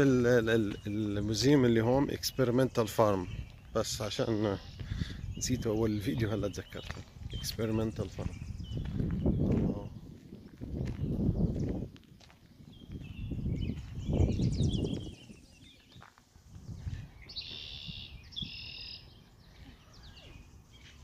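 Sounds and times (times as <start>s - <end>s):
songbirds singing: 0.0s - 21.0s
wind rumble on microphone: 3.2s - 20.8s.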